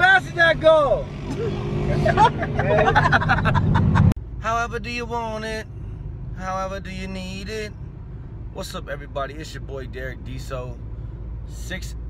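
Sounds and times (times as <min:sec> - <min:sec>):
car engine and road noise: 0:00.0 - 0:12.0
people laughing: 0:01.3 - 0:04.1
people talking: 0:04.4 - 0:05.6, 0:06.4 - 0:07.7, 0:08.6 - 0:10.8, 0:11.5 - 0:12.0.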